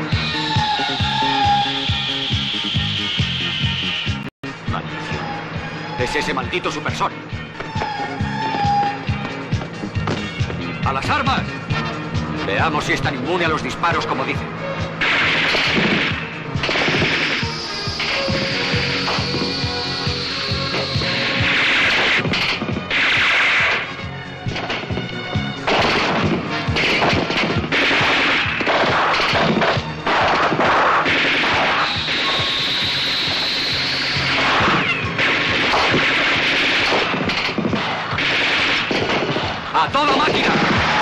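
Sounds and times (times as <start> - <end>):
film score music: 0.0 - 41.0
high whistling tone: 0.2 - 4.2, 7.6 - 9.2, 31.7 - 34.3
submachine guns firing bursts: 34.2 - 41.0.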